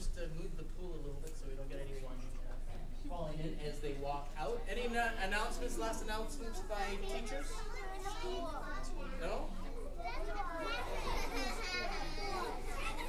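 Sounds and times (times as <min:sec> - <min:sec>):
crowd of children talking: 0:03.8 - 0:13.0.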